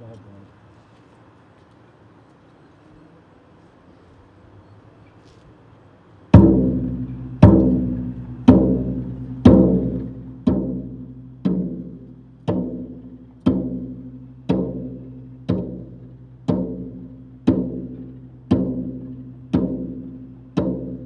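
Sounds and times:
bass drum strokes: 6.3 - 21.0.

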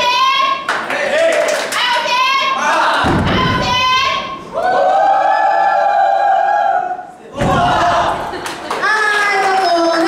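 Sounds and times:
group shouting team cheer: 0.0 - 8.4.

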